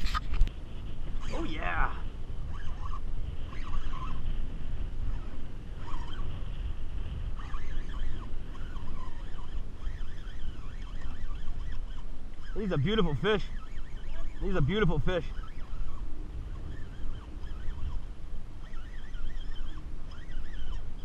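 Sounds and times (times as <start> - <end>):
faint thin whine: 0.0 - 21.0
wind buffeting microphone: 0.0 - 21.0.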